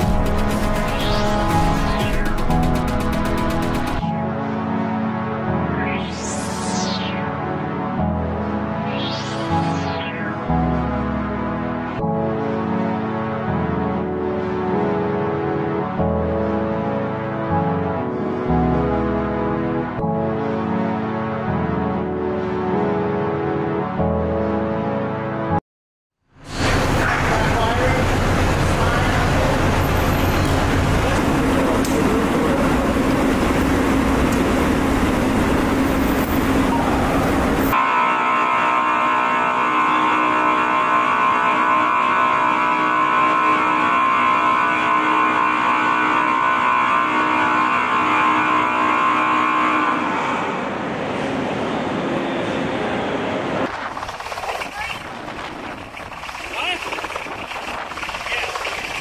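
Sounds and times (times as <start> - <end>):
dense machinery rumble: 26.5 - 37.7.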